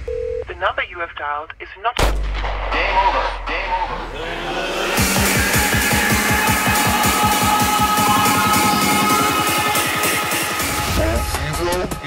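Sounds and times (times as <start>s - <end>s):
heavy boom with sub-bass tail: 2.0s - 5.6s
hard dance track: 3.1s - 12.0s.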